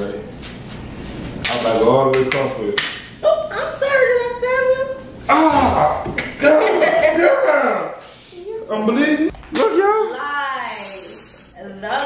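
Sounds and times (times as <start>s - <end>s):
hiss: 10.6s - 11.5s.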